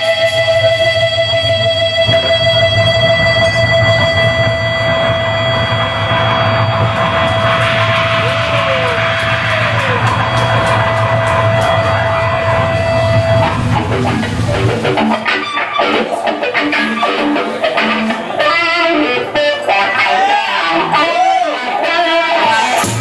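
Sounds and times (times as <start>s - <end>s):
cymbal wash: 0.0s - 18.3s
rock band sustained chord: 0.0s - 21.0s.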